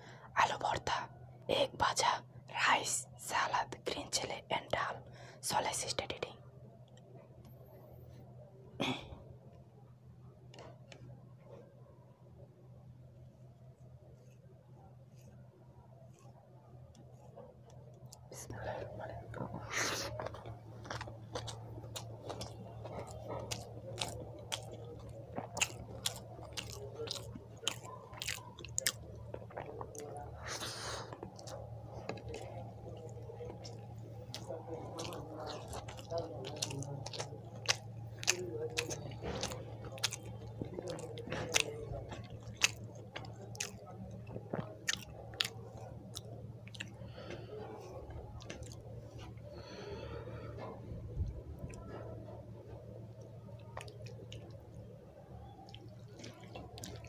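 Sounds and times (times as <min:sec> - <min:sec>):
steady low hum: 0:00.0 - 0:57.0
fingers squishing food: 0:13.5 - 0:57.0
wet mouth clicks: 0:19.3 - 0:49.4.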